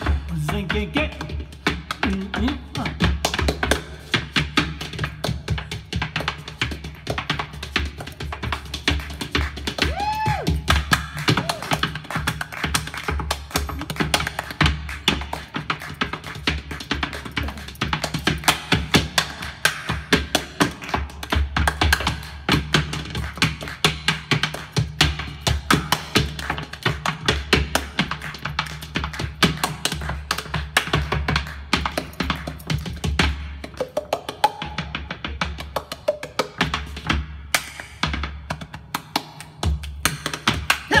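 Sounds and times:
shoe taps and stomps on stage floor: 0:00.0 - 0:41.0.

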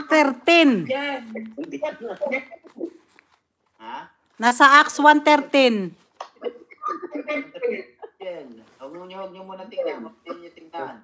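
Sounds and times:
voices on a video call: 0:00.0 - 0:11.0.

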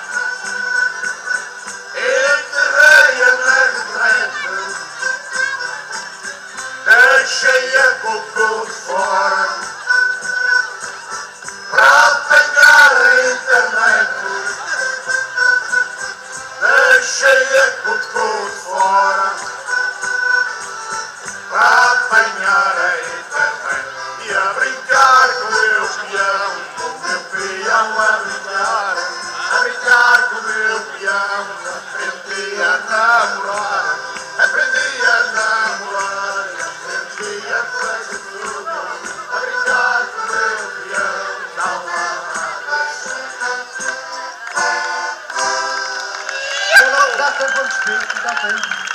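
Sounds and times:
male singers with instruments: 0:01.8 - 0:05.6, 0:06.6 - 0:09.9, 0:11.6 - 0:15.2, 0:16.5 - 0:19.8, 0:21.4 - 0:44.2.

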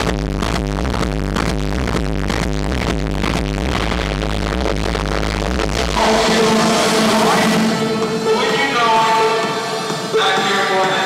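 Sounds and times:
techno music with kick beat: 0:00.0 - 0:11.0.

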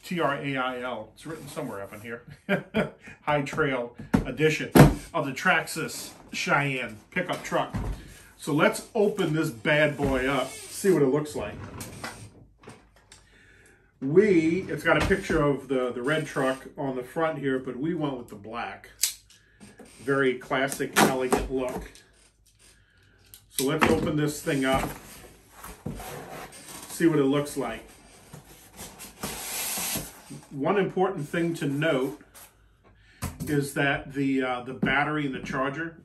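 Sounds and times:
styrofoam scraping cardboard: 0:24.4 - 0:30.6.

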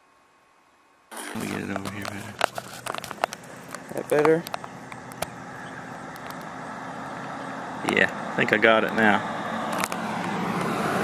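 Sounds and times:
handling clicks and knocks: 0:01.4 - 0:05.4, 0:06.1 - 0:06.5.

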